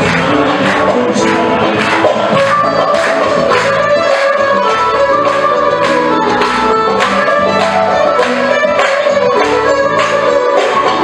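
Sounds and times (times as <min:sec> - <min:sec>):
man singing: 0:00.0 - 0:03.0
steady percussive beat: 0:00.0 - 0:11.0.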